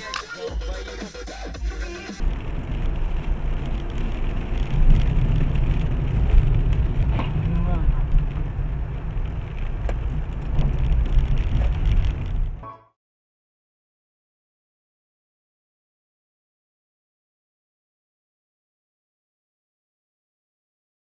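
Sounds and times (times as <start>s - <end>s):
car engine and road rumble: 0.0s - 12.7s.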